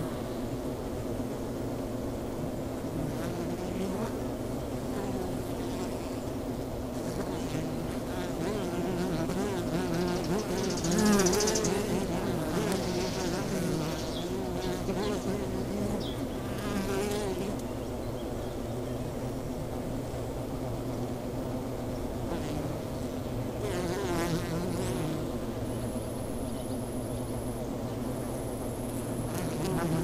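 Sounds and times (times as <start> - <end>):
bees passing close humming: 0.0 - 30.0
bees buzzing: 6.9 - 17.6, 23.6 - 26.3, 28.0 - 30.0.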